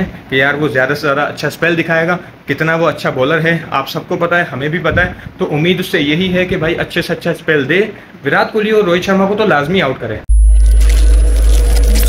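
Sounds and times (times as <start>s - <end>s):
deep bass rumble: 10.3s - 12.0s
thin high tone: 10.3s - 12.0s.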